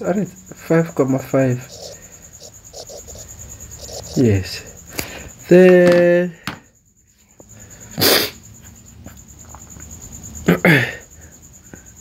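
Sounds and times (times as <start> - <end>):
person sneezing: 8.0 - 8.4.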